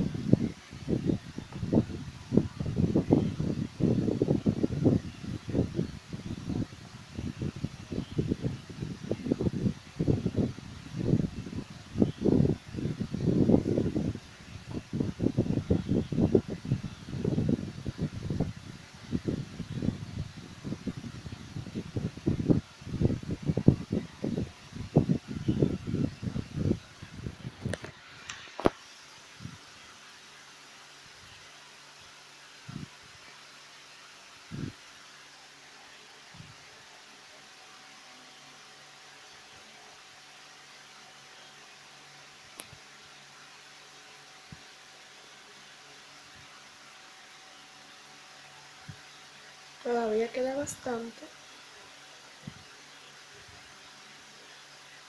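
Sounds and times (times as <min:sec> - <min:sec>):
phone microphone handling noise: 0:27.4 - 0:28.8.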